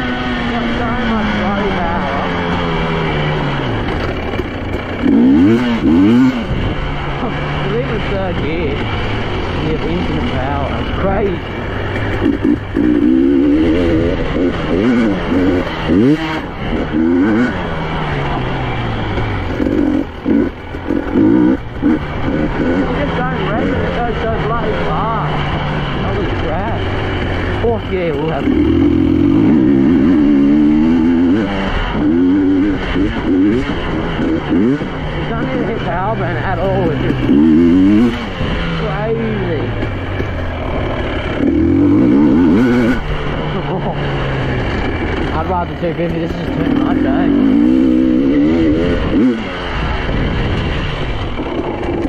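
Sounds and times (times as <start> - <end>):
dirt bike engine revving: 0.0 - 52.0.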